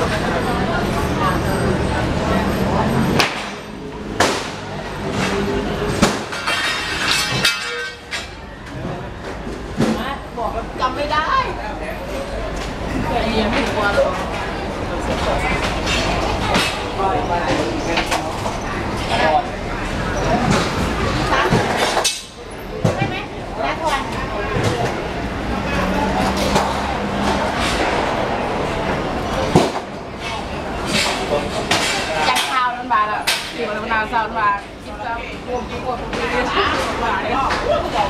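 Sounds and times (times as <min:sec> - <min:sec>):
voices: 0:00.0 - 0:38.0
metal poles knocking and clanging: 0:06.1 - 0:08.4.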